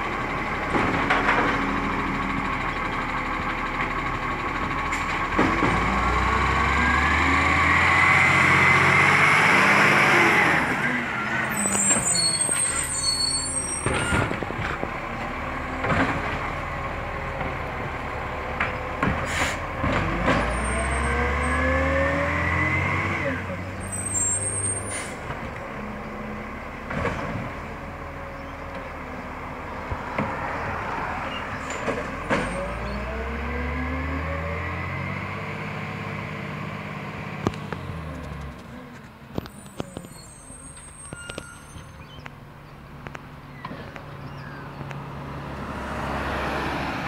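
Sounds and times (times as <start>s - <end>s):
garbage truck engine running: 0.0s - 9.0s
garbage truck diesel engine: 0.0s - 47.0s
brief high squeal: 11.5s - 14.2s, 23.8s - 25.2s, 39.5s - 42.1s.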